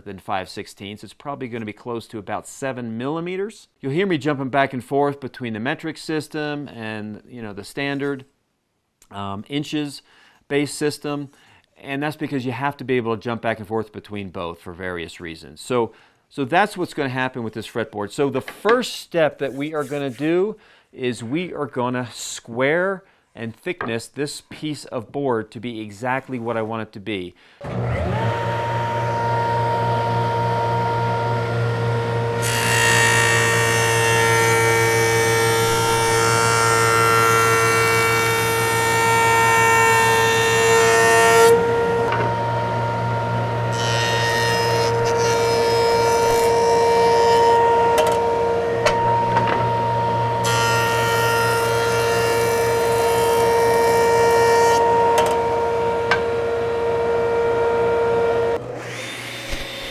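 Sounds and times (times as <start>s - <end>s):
jointer motor humming: 27.6s - 59.8s
cutterhead planing wood: 27.6s - 59.9s.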